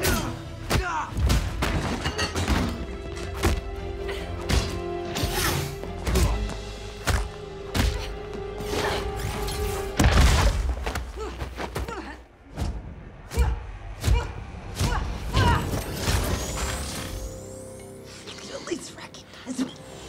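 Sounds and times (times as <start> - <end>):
orchestral film score: 0.0 - 20.0.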